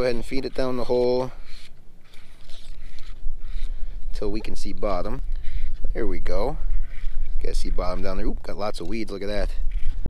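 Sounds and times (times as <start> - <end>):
faint handling rustles: 0.0 - 10.0
wind rumble on microphone: 0.0 - 10.0.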